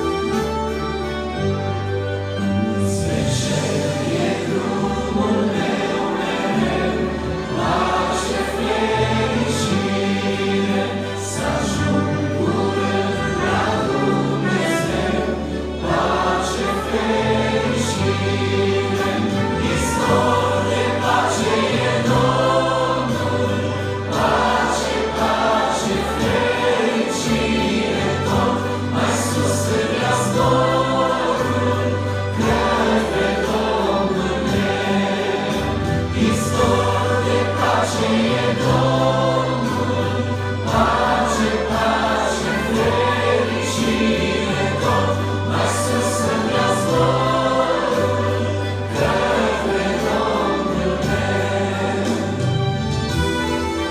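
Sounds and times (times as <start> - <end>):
accordion: 0.0 - 53.9
trumpet: 0.0 - 53.9
vocal group singing in harmony: 2.2 - 53.9.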